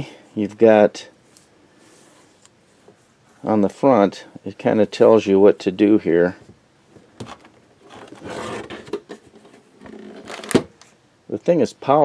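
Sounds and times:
plastic housing scraping: 0:07.2 - 0:10.8.

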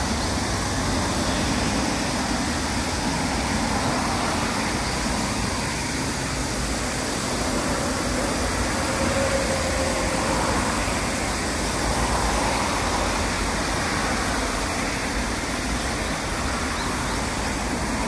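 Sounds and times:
distant road traffic: 0:00.0 - 0:18.0.

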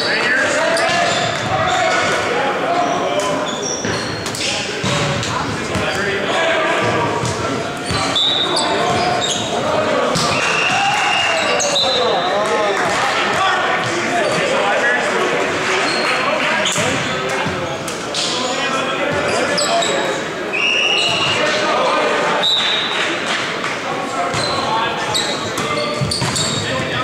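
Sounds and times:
players' voices calling: 0:00.0 - 0:27.0
sneakers squeaking on hardwood: 0:02.8 - 0:06.0, 0:07.2 - 0:09.6, 0:24.3 - 0:27.0.

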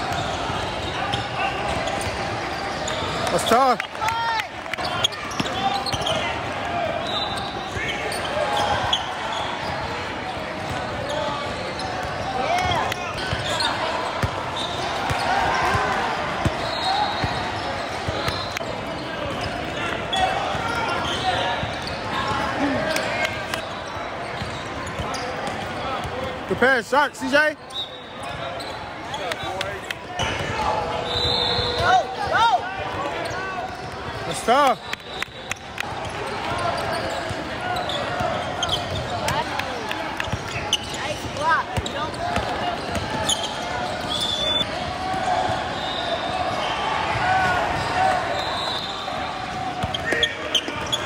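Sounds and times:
sneakers squeaking on court: 0:00.0 - 0:03.5, 0:04.8 - 0:26.5, 0:27.6 - 0:51.0
voices echoing in gym: 0:00.0 - 0:51.0.

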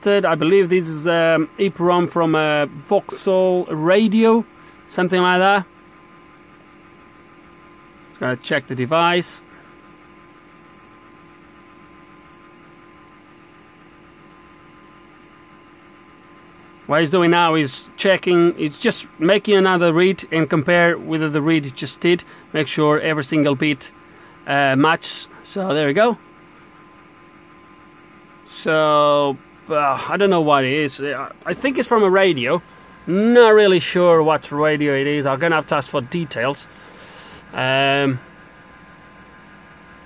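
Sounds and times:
electrical hum: 0:00.0 - 0:40.0.

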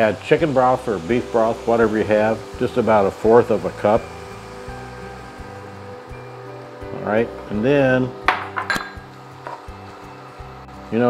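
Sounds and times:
broth hissing in hot skillet: 0:00.0 - 0:11.0
quiet background music: 0:00.0 - 0:11.0.

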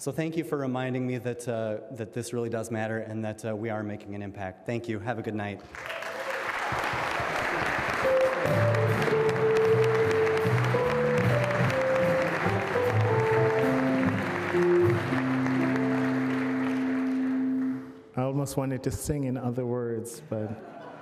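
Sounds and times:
audience applauding: 0:05.6 - 0:18.0
instrumental music with cello: 0:08.0 - 0:17.9.

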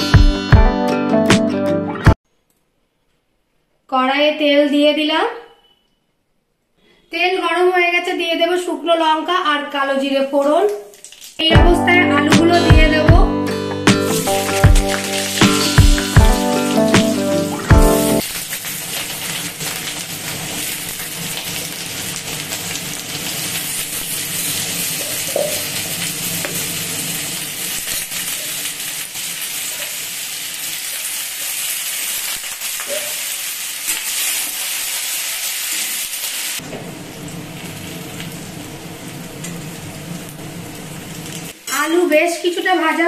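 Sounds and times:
potatoes sizzling in hot oil: 0:14.0 - 0:43.0.

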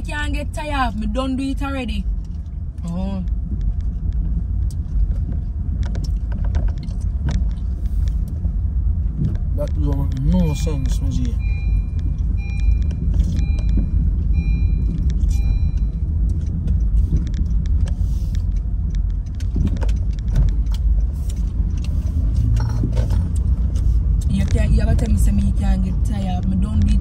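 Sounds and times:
car road and engine rumble: 0:00.0 - 0:27.0
high electronic beep: 0:10.2 - 0:16.2.

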